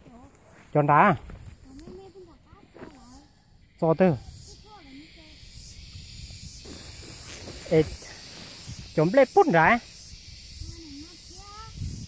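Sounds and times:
insects hissing: 0:00.0 - 0:12.0.

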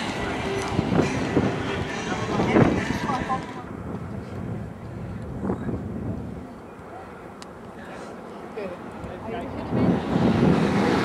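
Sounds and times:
wind on microphone: 0:00.0 - 0:06.6, 0:09.0 - 0:11.0
distant indistinct voices: 0:04.9 - 0:11.0.

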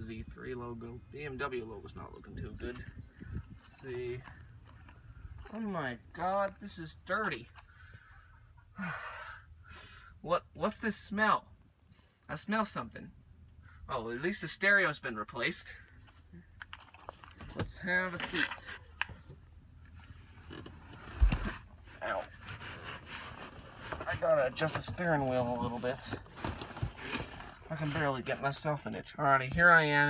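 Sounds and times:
man sighing: 0:08.7 - 0:09.6.

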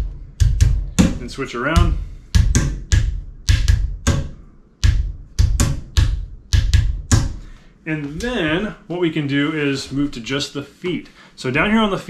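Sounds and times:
hand drumming on chair and lap: 0:00.0 - 0:07.5.

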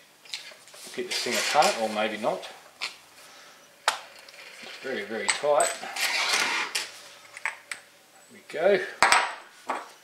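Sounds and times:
metal scraping rasp: 0:01.1 - 0:02.0, 0:05.7 - 0:06.9.

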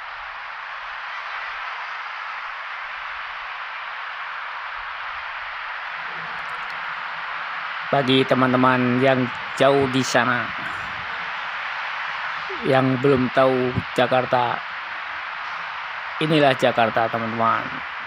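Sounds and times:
city ambience hiss: 0:00.0 - 0:18.0.

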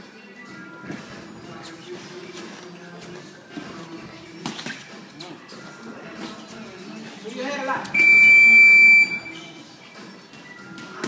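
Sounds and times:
background music: 0:00.0 - 0:11.0
voices in gym: 0:00.1 - 0:11.0.

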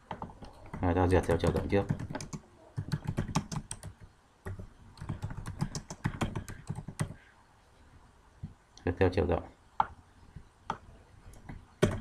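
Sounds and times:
typing on computer keyboard: 0:00.1 - 0:07.2, 0:11.8 - 0:12.0.

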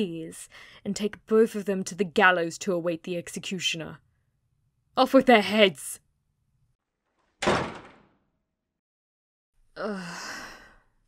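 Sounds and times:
heavy door shutting: 0:07.4 - 0:08.1.

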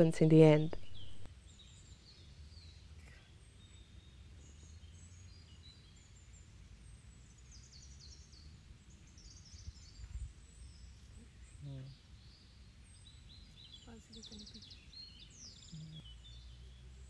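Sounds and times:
birds chirping faintly: 0:00.0 - 0:17.0.

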